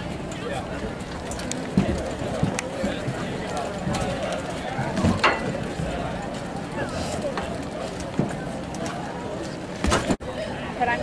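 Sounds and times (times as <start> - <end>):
many people talking: 0.0 - 11.0.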